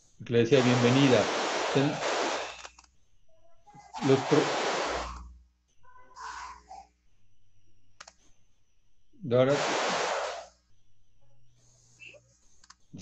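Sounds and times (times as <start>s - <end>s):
faint clicks: 8.0s - 8.3s, 12.0s - 12.9s.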